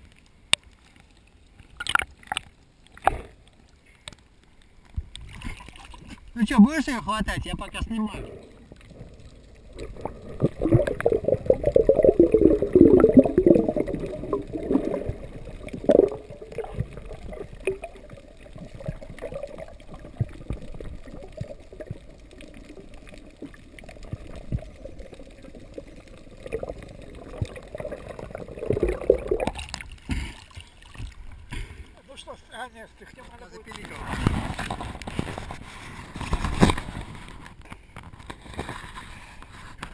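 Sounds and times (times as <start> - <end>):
underwater gurgling and bubbling: 7.9 - 30.3.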